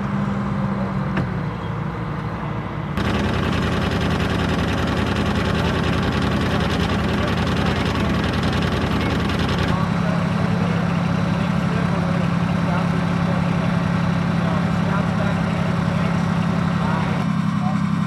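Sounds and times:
diesel engine idling: 3.0s - 18.0s.

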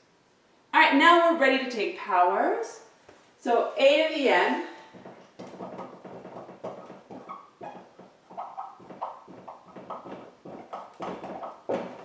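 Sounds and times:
marker squeaking on whiteboard: 4.9s - 12.0s.

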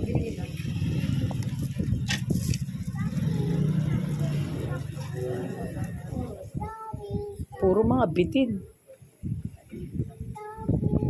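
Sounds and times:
indistinct background voices: 2.2s - 7.8s.

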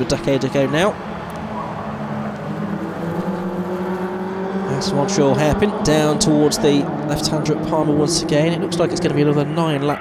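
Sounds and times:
race car engines running: 0.0s - 10.0s
higher engine note accelerating: 0.9s - 10.0s.

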